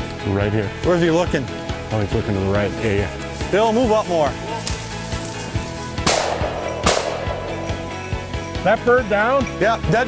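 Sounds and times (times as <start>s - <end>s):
background music with beat: 2.9s - 10.0s
shotgun shots: 6.0s - 8.1s.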